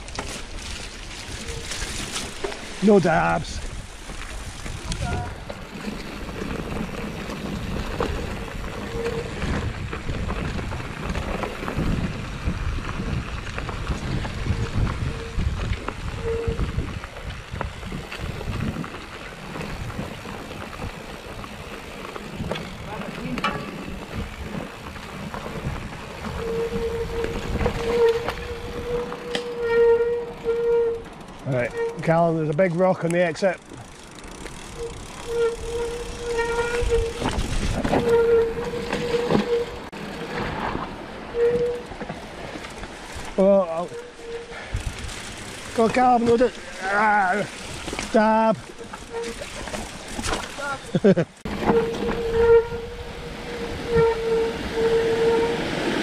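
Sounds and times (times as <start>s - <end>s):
bike chain and frame rattling: 0.0s - 56.0s
bike tyres on dirt: 0.0s - 56.0s
wind rumbling on microphone: 3.3s - 31.9s, 33.7s - 50.8s, 51.4s - 56.0s
freehub clicking buzz: 33.6s - 39.8s.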